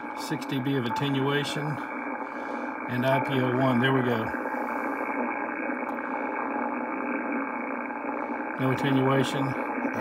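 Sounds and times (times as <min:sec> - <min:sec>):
rough radio static hiss: 0:00.0 - 0:10.0.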